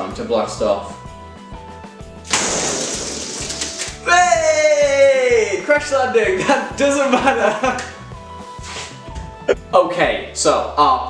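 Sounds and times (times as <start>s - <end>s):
background music with beat: 1.0s - 9.8s
air hissing from balloon: 2.3s - 3.8s.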